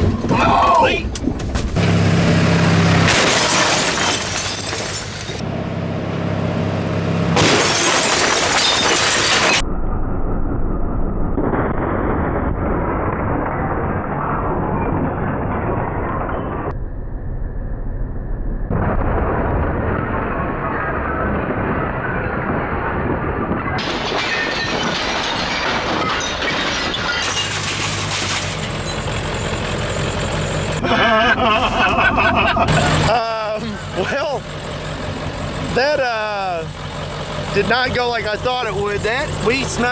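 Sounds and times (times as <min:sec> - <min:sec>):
debris clattering: 0:03.0 - 0:05.4, 0:07.4 - 0:09.6, 0:18.7 - 0:30.8
wood and glass breaking: 0:03.0 - 0:05.4, 0:07.4 - 0:09.6, 0:19.9 - 0:30.3
voices: 0:30.8 - 0:34.5, 0:35.6 - 0:36.8, 0:37.5 - 0:39.9.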